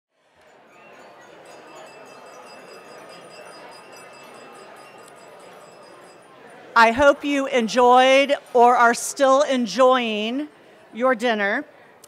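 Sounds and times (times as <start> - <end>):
murmur of many diners: 0.2 - 12.0.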